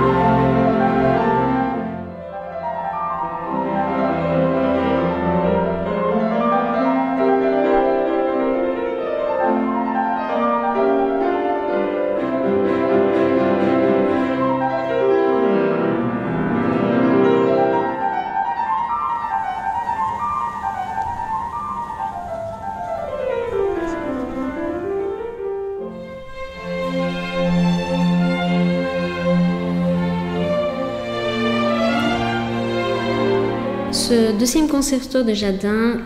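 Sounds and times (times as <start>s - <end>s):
classical piano running scales: 0.0s - 36.0s.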